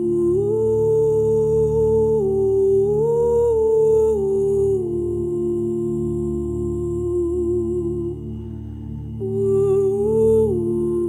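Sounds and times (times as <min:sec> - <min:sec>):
low sustained group humming: 0:00.0 - 0:11.0
person humming a slow melody: 0:00.0 - 0:11.0.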